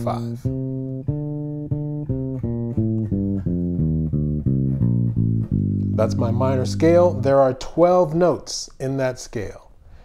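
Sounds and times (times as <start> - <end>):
electric bass plucked notes: 0.0 - 7.6.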